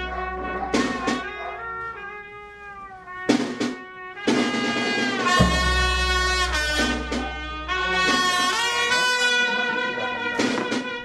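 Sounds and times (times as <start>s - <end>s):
bending horn melody: 0.0s - 11.0s
drum strikes: 3.3s - 9.3s.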